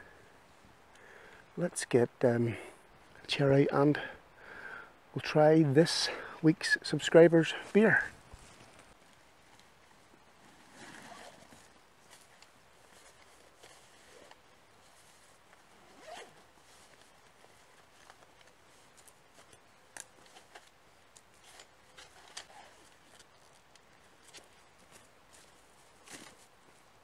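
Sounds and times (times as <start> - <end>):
fabric bag zipping and rustling: 10.5 - 11.7, 15.8 - 16.4.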